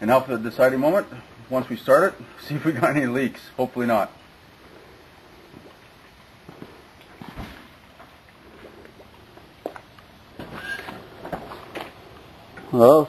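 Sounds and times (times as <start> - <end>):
low steady background noise: 0.0 - 13.0.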